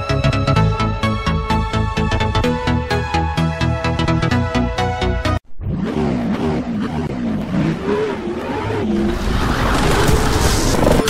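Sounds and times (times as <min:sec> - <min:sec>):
tyre skid and engine revving effect: 0:05.6 - 0:11.0.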